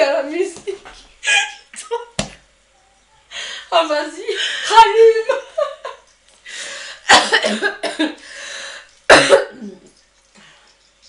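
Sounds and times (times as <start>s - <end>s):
women laughing: 0.7s - 2.2s, 4.2s - 6.1s
women coughing: 7.0s - 8.2s, 9.1s - 9.9s.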